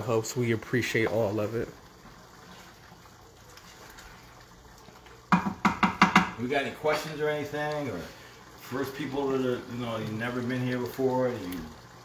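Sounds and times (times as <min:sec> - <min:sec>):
sauce bubbling in a pan: 0:00.0 - 0:12.0
wooden spoon knocking on pan: 0:05.3 - 0:06.4.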